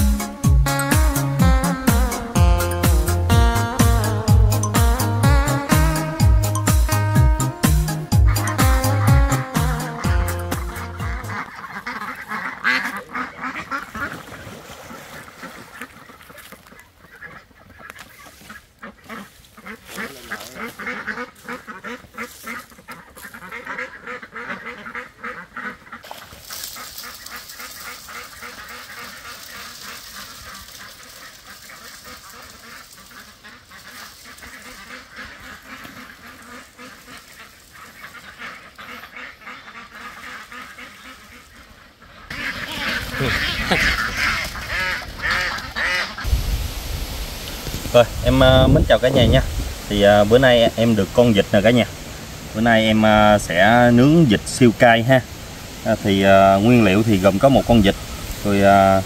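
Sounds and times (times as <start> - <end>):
ducks quacking: 0.0 - 46.4, 47.6 - 59.0
wings flapping: 26.0 - 41.6, 42.3 - 46.4.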